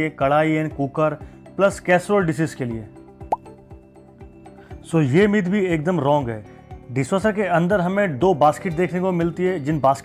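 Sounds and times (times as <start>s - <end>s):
background music sustained tones: 0.0s - 10.0s.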